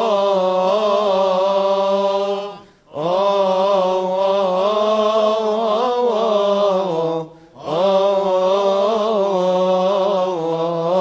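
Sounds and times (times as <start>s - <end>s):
solo voice chanting: 0.0s - 11.0s.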